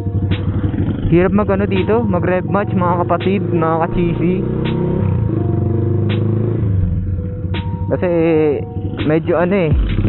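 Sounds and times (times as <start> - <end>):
motorcycle exhaust at low revs: 0.0 - 10.0.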